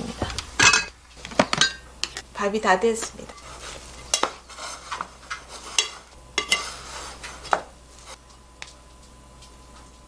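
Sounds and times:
rice paddle scraping metal pot: 3.2s - 8.2s.

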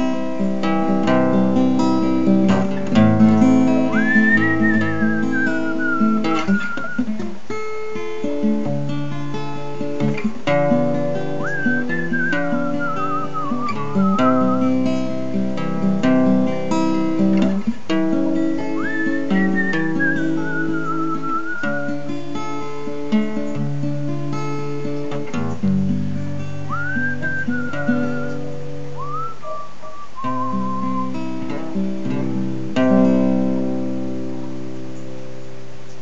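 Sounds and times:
strummed acoustic guitar: 0.0s - 35.7s
person whistling a melody: 3.9s - 7.2s, 11.4s - 14.9s, 18.8s - 22.0s, 26.6s - 31.4s.

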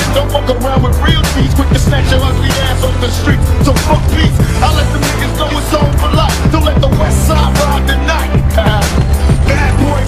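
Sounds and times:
heavy steady bass: 0.0s - 10.0s
instrumental hip-hop beat: 0.0s - 10.0s.

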